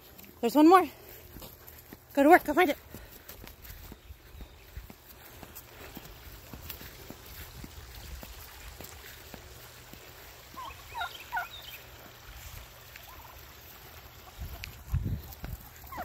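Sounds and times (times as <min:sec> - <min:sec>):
turkey calling: 0:10.2 - 0:16.0.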